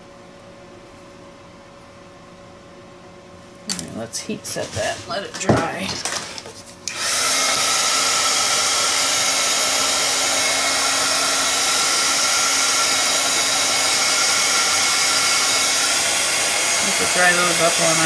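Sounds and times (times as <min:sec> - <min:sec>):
heat gun blowing with whir: 0:06.8 - 0:18.0.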